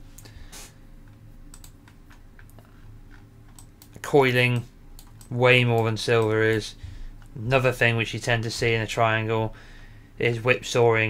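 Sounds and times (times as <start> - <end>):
faint low hum: 0.0 - 11.0
keyboard and mouse clicks: 1.0 - 4.0, 4.6 - 6.6.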